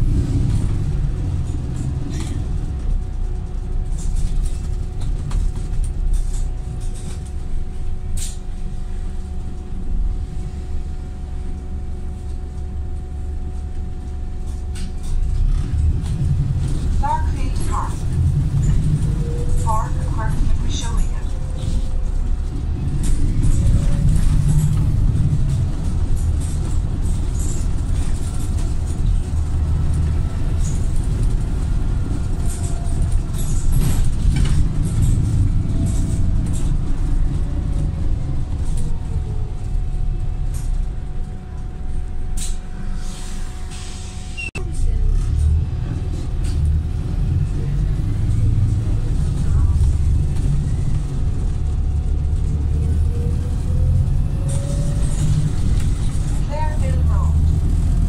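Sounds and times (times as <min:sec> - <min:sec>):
bus body rattling: 0:00.0 - 0:10.9, 0:12.2 - 0:42.8, 0:43.7 - 0:58.0
bus diesel engine rumbling: 0:00.0 - 0:58.0.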